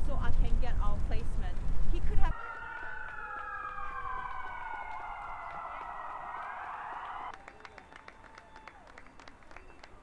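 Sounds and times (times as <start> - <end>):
emergency vehicle siren wailing: 2.3 - 8.9.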